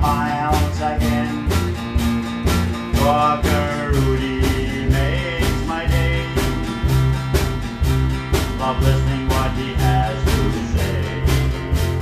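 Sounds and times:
acoustic guitar: 0.0 - 12.0
drum kit beat: 0.0 - 12.0
electric bass: 0.0 - 12.0.

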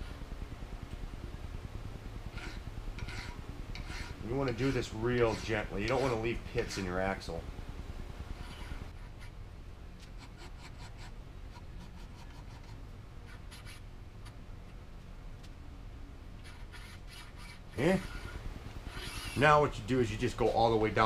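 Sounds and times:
file scraping steel: 2.3 - 6.9, 8.3 - 9.3, 16.4 - 19.4.

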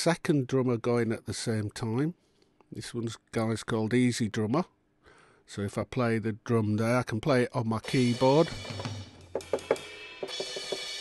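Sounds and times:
drum hits: 7.8 - 11.0
cymbal ringing: 7.9 - 11.0.

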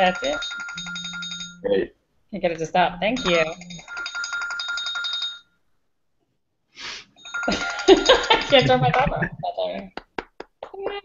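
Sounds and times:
electronic ringing trill: 0.0 - 1.9, 2.8 - 5.5, 7.2 - 9.1.

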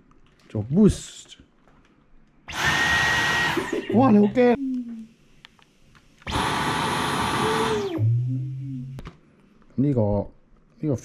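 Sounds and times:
vacuum cleaner running: 2.5 - 4.0, 6.3 - 9.0.

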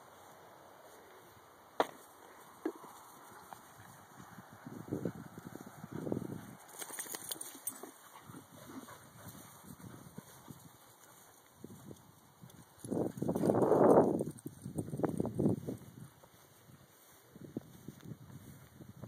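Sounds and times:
dogs playing: 2.3 - 15.3.

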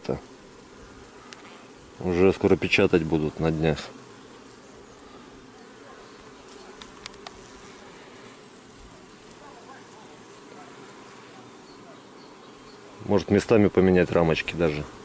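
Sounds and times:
honeybees humming: 0.0 - 15.0
faint clicks: 6.7 - 7.4.

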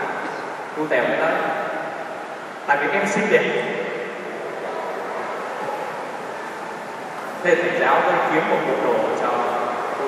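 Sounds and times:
crowd laughing and murmuring: 4.0 - 7.4.

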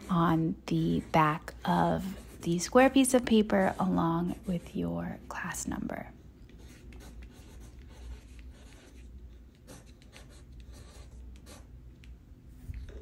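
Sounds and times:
pencil scratching on paper: 0.0 - 12.2.

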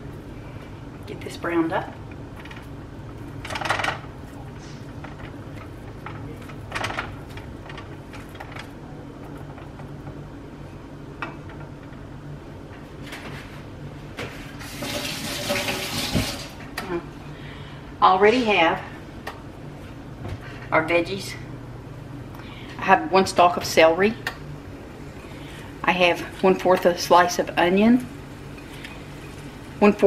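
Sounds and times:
steady low hum: 0.0 - 30.0
kitchen tap running: 14.6 - 16.6.

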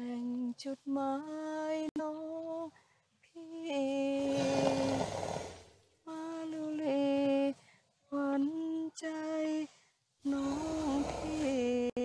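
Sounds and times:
breathy rushing noise: 4.2 - 5.7.

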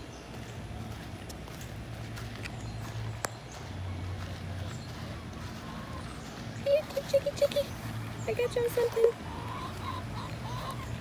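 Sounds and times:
steady low hum: 0.0 - 11.0
hens clucking: 2.8 - 11.0.

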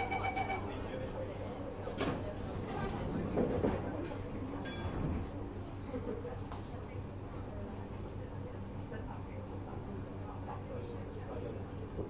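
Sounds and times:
train carriage hum and rumble: 0.0 - 12.0.

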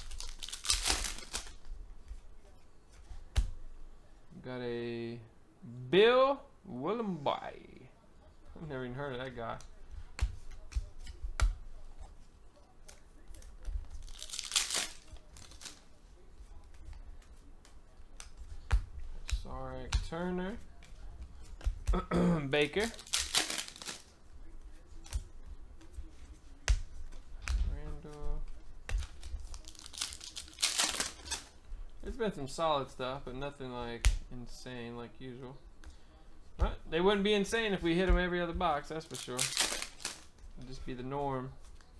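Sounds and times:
foil crinkle: 0.0 - 1.6, 13.9 - 16.0, 22.6 - 24.2, 29.0 - 31.5, 39.0 - 40.3
foil pack ripping: 0.0 - 1.6, 14.0 - 15.8, 22.8 - 24.1, 29.0 - 31.5, 39.0 - 40.3.

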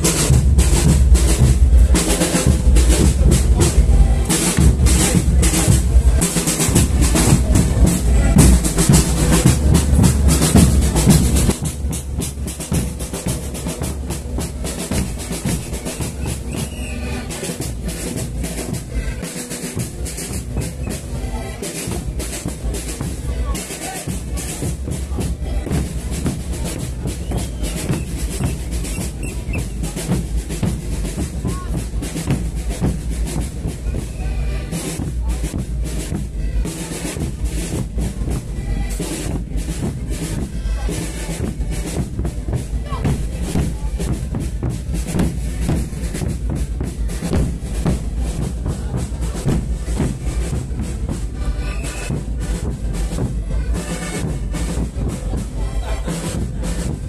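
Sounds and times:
bass drums beaten: 0.0 - 17.0, 24.1 - 57.0.

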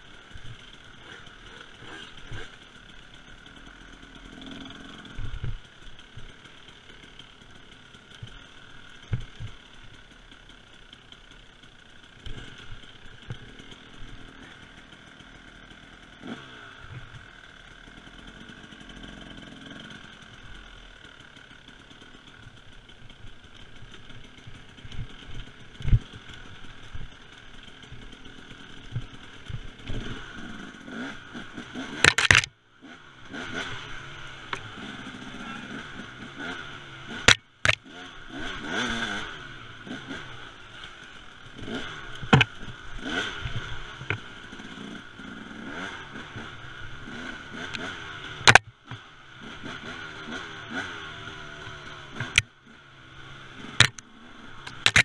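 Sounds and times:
two-stroke motorbike engine revving: 0.0 - 55.0
knocks and clatter over bumps: 9.0 - 9.6, 31.7 - 32.5, 37.1 - 37.9, 41.6 - 44.3, 47.6 - 49.0, 52.2 - 52.5, 53.6 - 54.0, 54.6 - 55.0.

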